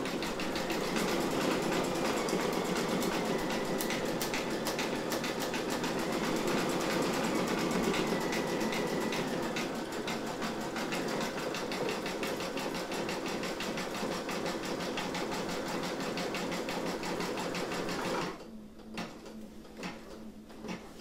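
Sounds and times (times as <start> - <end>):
sewing machine stitching: 0.0 - 19.2.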